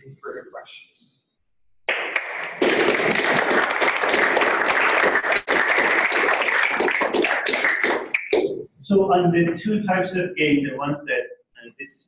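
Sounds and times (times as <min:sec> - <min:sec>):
audience applauding: 0:01.9 - 0:08.6.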